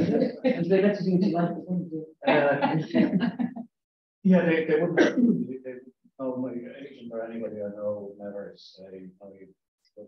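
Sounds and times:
person clearing throat: 4.5 - 5.6.

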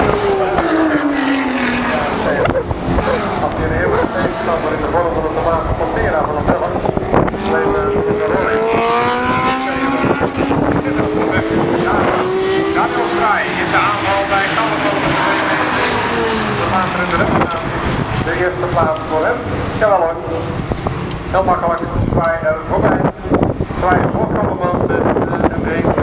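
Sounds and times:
engine accelerating: 0.0 - 22.0
race car engines passing: 0.0 - 26.0.

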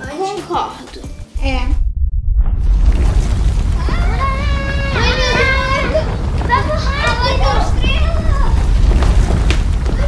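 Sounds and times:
music with steady bass: 0.6 - 3.0
children's excited voices: 3.8 - 8.8.

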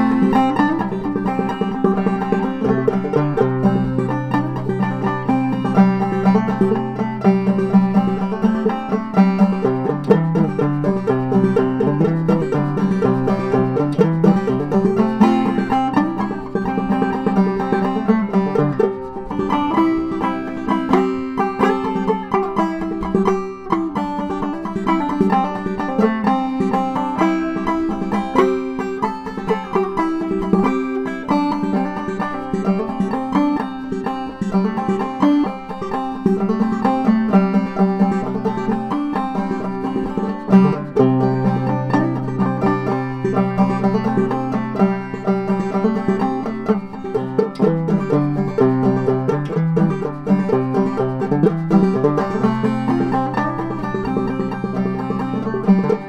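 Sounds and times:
banjo played clawhammer style: 0.0 - 56.0.

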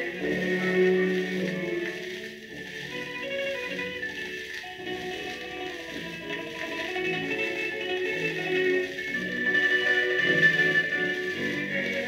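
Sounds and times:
orchestra playing a waltz: 0.0 - 12.0
record surface hiss and crackle: 0.0 - 12.0.

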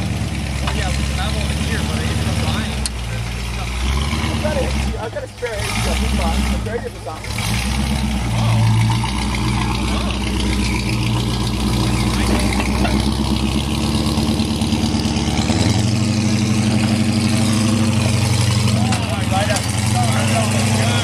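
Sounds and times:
truck engine under load: 0.0 - 21.0.

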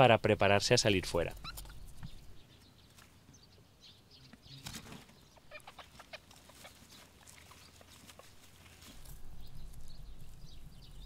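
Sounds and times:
rabbit scuffle: 4.3 - 11.0
rabbits rustling on straw: 4.5 - 11.0.

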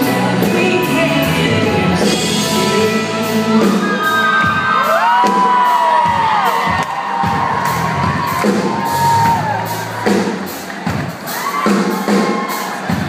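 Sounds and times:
live band playing: 0.0 - 13.0
steady drum beat: 0.0 - 13.0
audience screaming and cheering: 3.3 - 13.0.

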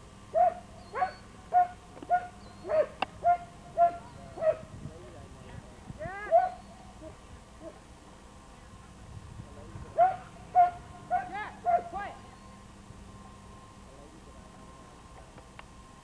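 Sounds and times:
dog barking: 0.4 - 4.7, 6.3 - 7.8, 10.0 - 12.0.

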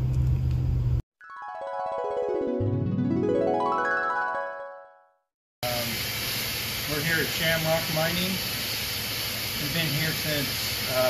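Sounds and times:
background music: 1.2 - 5.2
workshop background hiss: 5.6 - 11.0.

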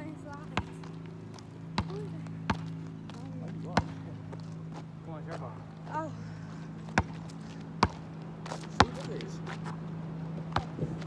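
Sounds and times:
steady low hum: 0.0 - 11.0
basketball thumps: 0.5 - 1.0, 1.8 - 4.0, 6.9 - 9.1, 10.5 - 11.0.

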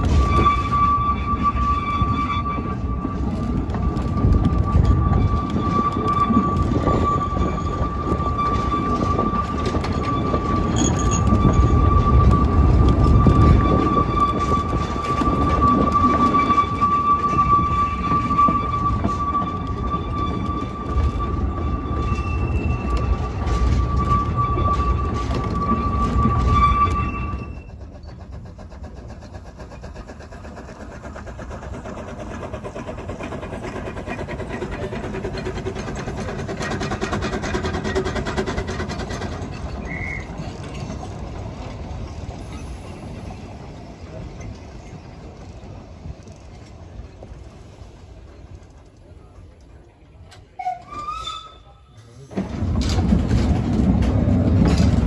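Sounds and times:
high-pitched wheel squeal: 0.0 - 28.4, 29.2 - 44.2, 50.5 - 52.2
approaching train: 0.0 - 55.0
wheels rumbling on track: 0.0 - 55.0.

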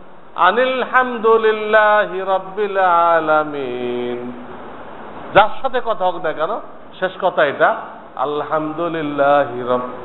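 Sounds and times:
man chanting: 0.4 - 4.4, 5.3 - 10.0.

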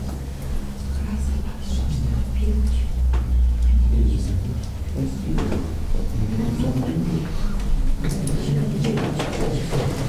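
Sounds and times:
low hum: 0.0 - 8.8
low voices: 0.3 - 10.0.

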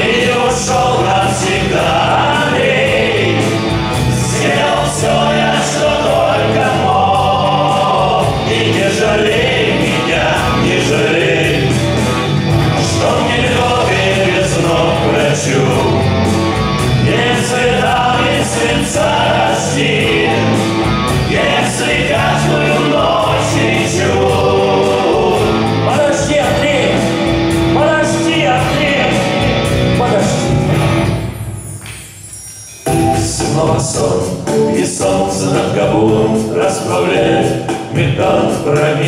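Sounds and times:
sustained choir-like vocals: 0.0 - 29.4, 33.1 - 39.0
bass guitar: 0.0 - 31.4
electric guitars: 0.0 - 31.4
keyboard: 0.0 - 39.0
live band music: 0.0 - 39.0.

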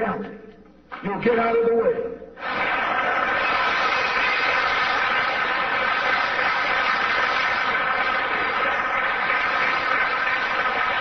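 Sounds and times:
audience applauding: 2.4 - 11.0.

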